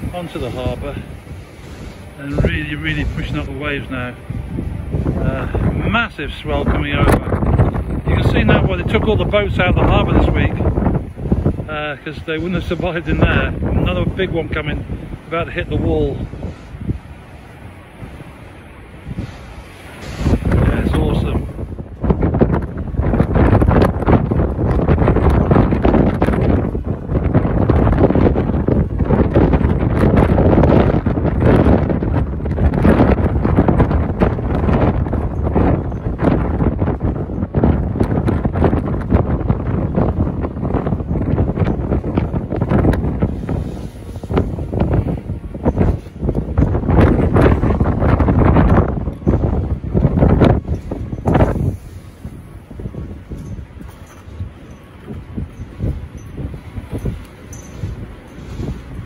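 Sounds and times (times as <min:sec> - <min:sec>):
storm wind buffeting microphone: 0:00.0 - 0:59.0.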